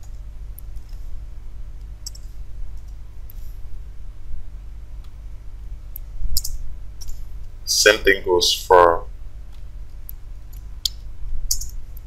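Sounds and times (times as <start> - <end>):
steady low hum: 0.0 - 12.0
computer mouse clicks: 2.0 - 3.4, 10.1 - 12.0.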